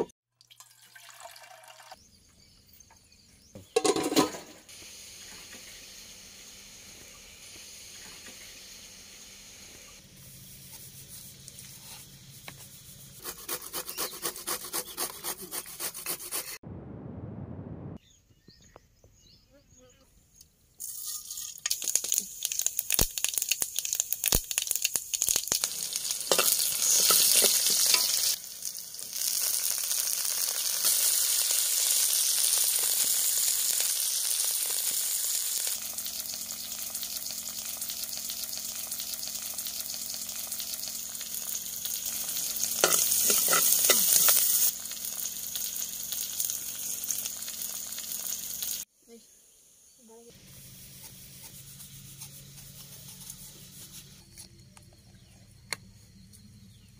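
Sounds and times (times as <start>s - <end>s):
food sizzling in hot oil: 3.7s - 12.9s, 20.8s - 48.9s.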